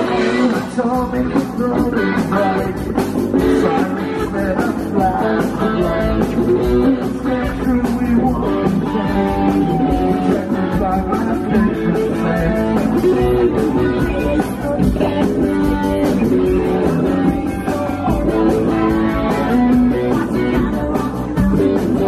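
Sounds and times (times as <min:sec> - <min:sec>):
live rock band playing: 0:00.0 - 0:22.0
person singing: 0:00.0 - 0:22.0.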